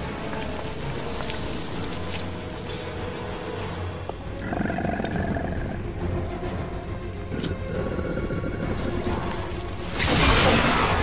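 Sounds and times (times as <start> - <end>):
tense film score drone: 0.0 - 11.0
low creature growl: 7.3 - 9.3.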